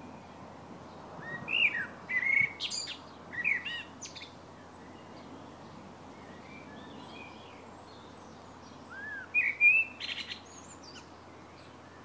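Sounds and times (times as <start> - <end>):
faint outdoor background: 0.0 - 12.0
birds chirping and calling: 1.2 - 12.0.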